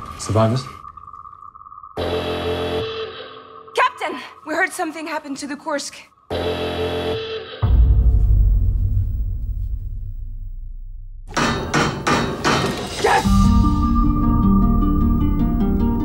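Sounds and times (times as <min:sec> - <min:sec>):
deep low boom: 0:07.6 - 0:11.3
rapid sharp knocks: 0:11.3 - 0:12.9.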